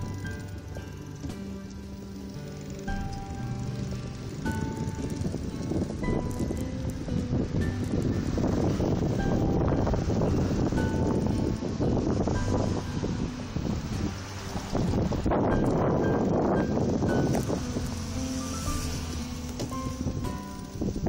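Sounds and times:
faint music notes: 0.0 - 21.0
wind buffeting microphone: 2.2 - 21.0.

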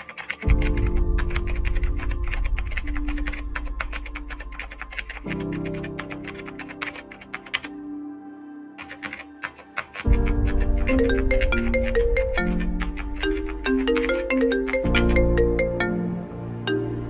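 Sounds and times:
keyboard typing: 0.0 - 7.8, 8.8 - 15.8
background music: 0.0 - 17.0.

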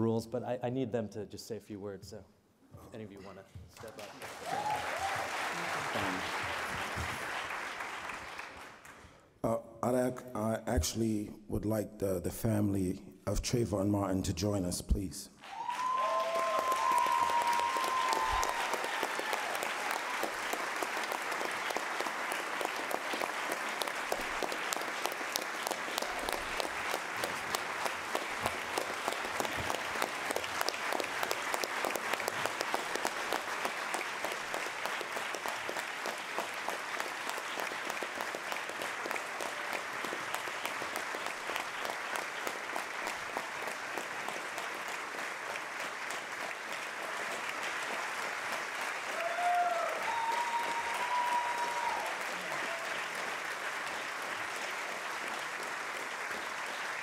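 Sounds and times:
audience applause: 3.8 - 9.0, 15.4 - 57.0.

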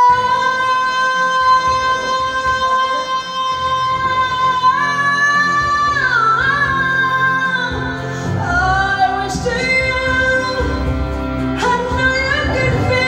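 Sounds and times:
karaoke backing track: 0.0 - 13.0
woman singing into microphone: 0.0 - 13.0.

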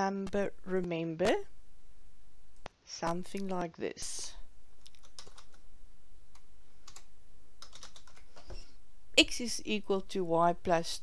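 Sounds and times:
computer keyboard typing: 4.8 - 5.6, 6.3 - 8.6.

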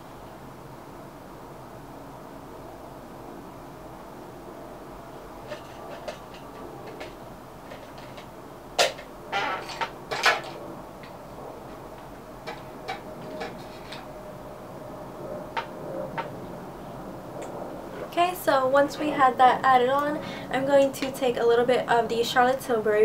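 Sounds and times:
low room hum: 0.0 - 23.0.

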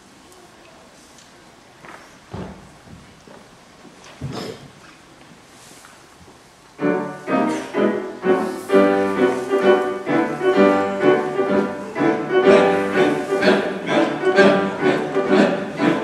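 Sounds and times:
piano chords: 6.8 - 16.0.

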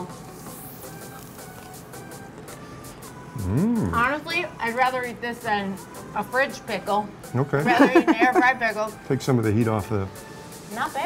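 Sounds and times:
faint background music: 0.0 - 11.0
person saying mmm tasting food: 3.4 - 4.0.

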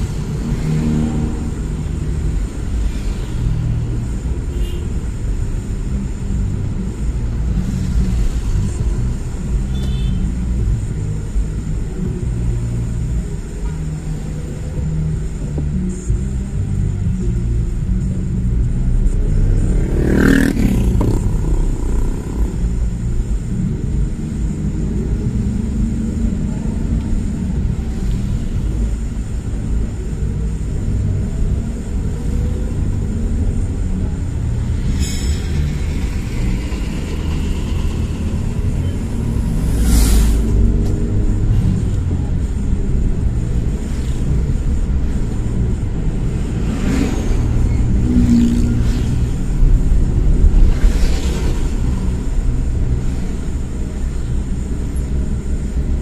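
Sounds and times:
car road rumble: 0.0 - 56.0
vehicles rushing past: 0.0 - 56.0.

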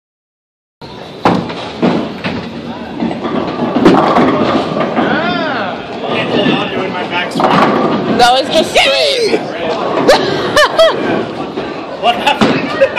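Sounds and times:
bowling ball rolling rumble: 1.0 - 12.9
voices: 2.2 - 12.9.

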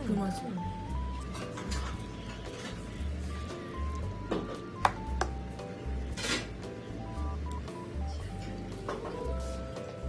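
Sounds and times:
bass line: 2.9 - 9.7.

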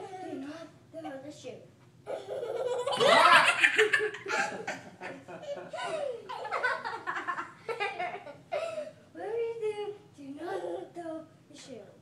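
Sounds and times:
toddler laughing: 2.1 - 8.3.

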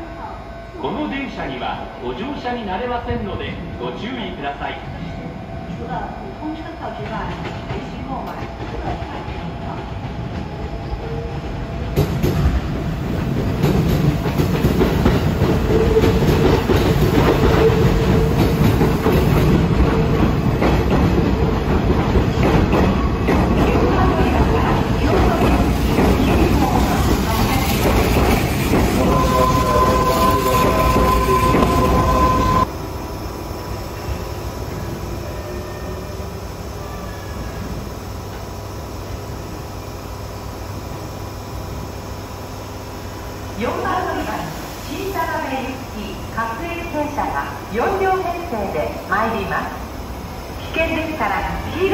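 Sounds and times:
high squeal of train: 0.0 - 51.9
train wheels clattering: 12.0 - 32.7.

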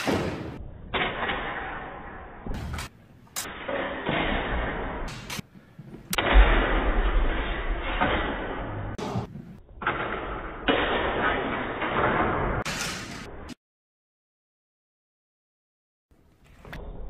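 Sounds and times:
rough hall noise: 0.0 - 13.6.

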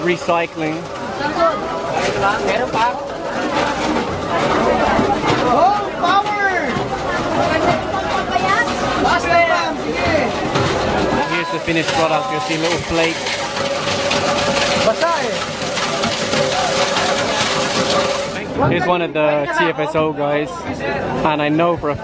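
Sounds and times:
bottle shredder pedalled: 0.0 - 18.8
people chattering: 0.0 - 22.0.

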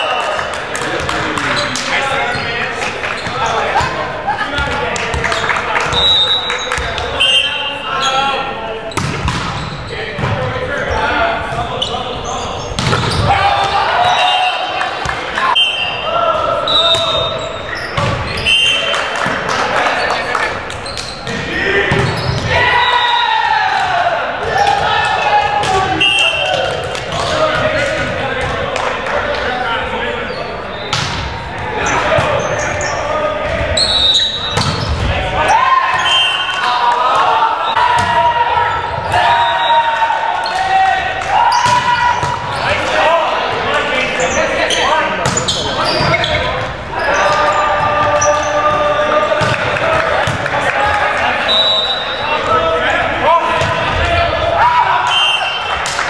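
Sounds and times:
players calling out: 0.0 - 56.0
volleyball hits and bounces: 8.9 - 9.6, 12.7 - 13.8, 18.0 - 18.3, 30.9 - 31.3, 34.5 - 35.2, 37.1 - 38.3, 40.5 - 42.9, 45.2 - 46.8, 47.8 - 51.0.

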